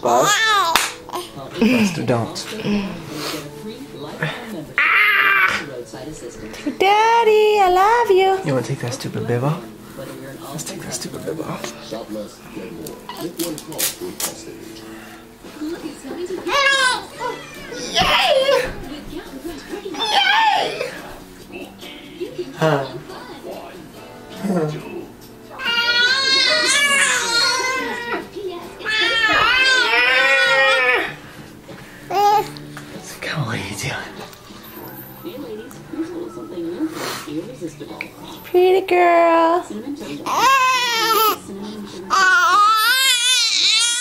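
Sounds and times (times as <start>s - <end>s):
baby squealing: 4.8s - 5.6s, 40.3s - 41.4s, 42.1s - 44.0s.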